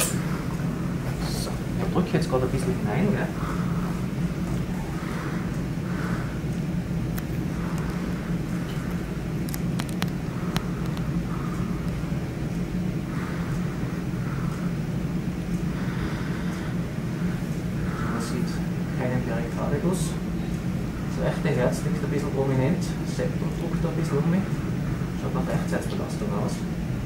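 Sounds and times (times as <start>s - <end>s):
steady low hum: 0.0s - 27.0s
light clicks: 8.7s - 11.2s.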